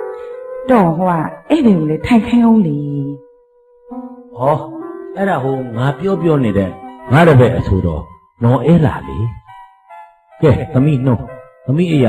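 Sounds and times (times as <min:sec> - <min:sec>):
steady held musical tone: 0:03.9 - 0:12.0
person speaking or chanting: 0:04.4 - 0:09.4.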